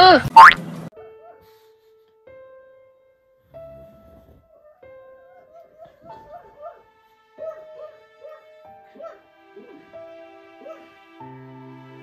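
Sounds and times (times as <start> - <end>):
piano background music: 0.6 - 12.0
dog crying: 4.6 - 9.8, 10.6 - 10.8.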